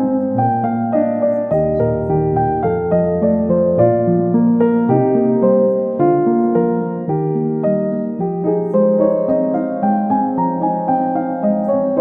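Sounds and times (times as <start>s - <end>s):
slow piano keyboard music: 0.0s - 12.0s.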